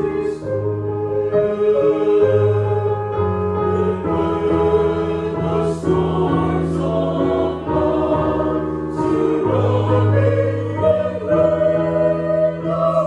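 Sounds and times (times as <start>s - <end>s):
choir singing a gospel hymn: 0.0s - 13.0s.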